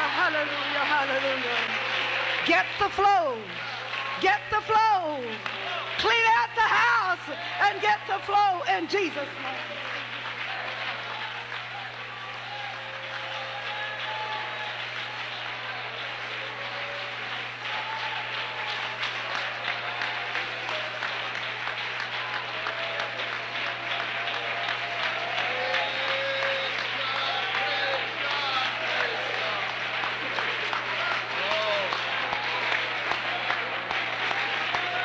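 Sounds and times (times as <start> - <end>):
congregation clapping: 0.0 - 35.0.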